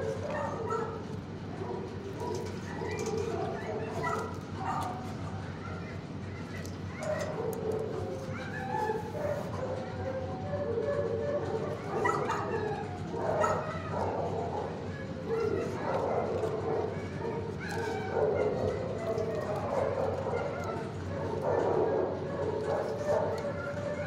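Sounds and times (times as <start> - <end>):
dogs barking: 0.0 - 24.0.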